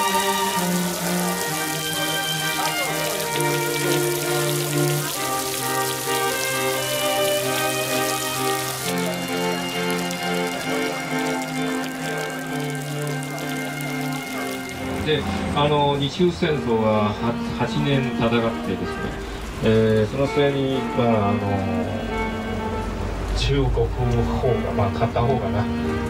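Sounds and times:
heavy rain on pavement: 0.0 - 26.0
slow background music: 0.0 - 26.0.

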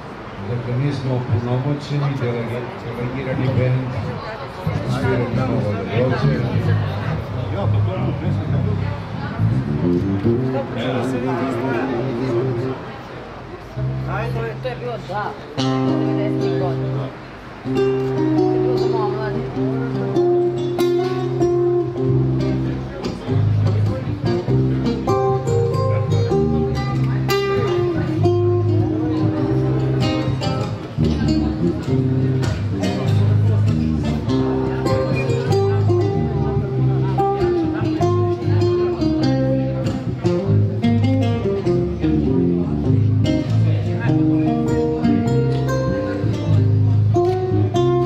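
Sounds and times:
electric bass guitar: 3.0 - 48.0
acoustic guitar picked and strummed: 15.6 - 48.0.

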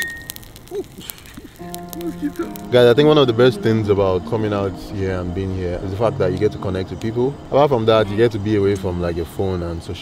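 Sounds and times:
sharp fire pops: 0.0 - 3.4
bonfire crackling: 0.0 - 10.0
background music: 1.6 - 10.0.

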